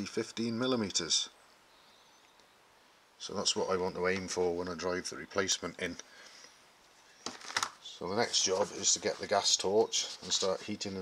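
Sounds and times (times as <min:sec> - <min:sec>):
man speaking: 0:00.0 - 0:01.3, 0:03.2 - 0:06.0, 0:07.8 - 0:11.0
faint hiss: 0:00.0 - 0:11.0.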